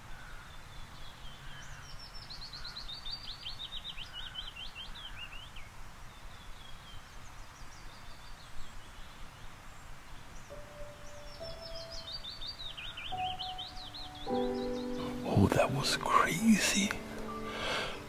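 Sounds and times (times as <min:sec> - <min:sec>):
outdoor background noise: 0:00.0 - 0:18.0
bird singing trills: 0:10.2 - 0:18.0
soft music with held notes: 0:10.5 - 0:18.0.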